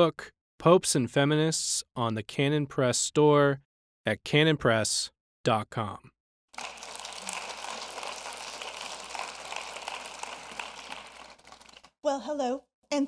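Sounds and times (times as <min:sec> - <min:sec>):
audience applauding: 0:06.6 - 0:12.0.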